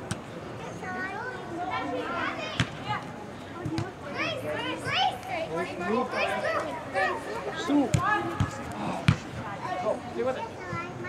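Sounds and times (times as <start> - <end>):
girls calling and shouting: 0.6 - 11.0.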